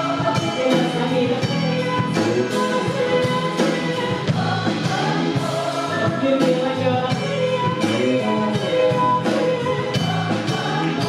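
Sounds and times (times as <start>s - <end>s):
audience singing along: 0.0s - 11.0s
piano and band: 0.0s - 11.0s
voices singing in chorus: 0.0s - 11.0s.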